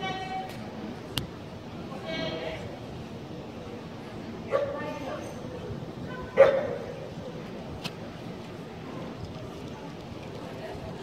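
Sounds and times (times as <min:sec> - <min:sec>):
dog barking: 0:06.3 - 0:06.9.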